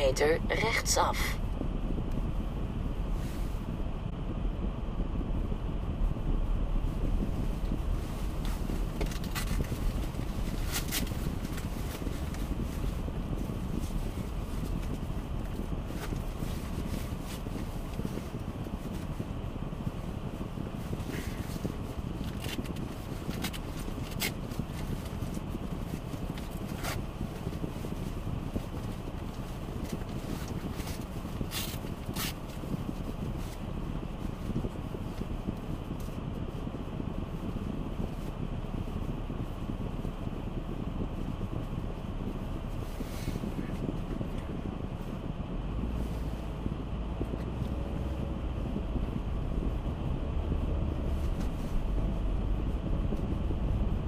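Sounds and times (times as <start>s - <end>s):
car rumble from inside cabin: 0.0s - 54.0s
engine idling: 0.0s - 54.0s.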